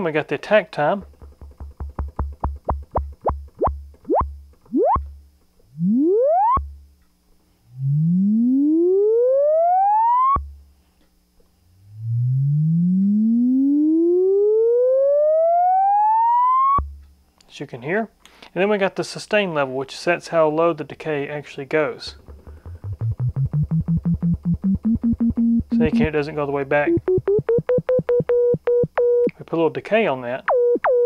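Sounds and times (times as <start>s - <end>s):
synthesizer low note filter sweeps: 2.6s - 5.0s, 5.7s - 6.7s, 7.7s - 10.5s, 11.8s - 16.8s, 22.1s - 29.3s.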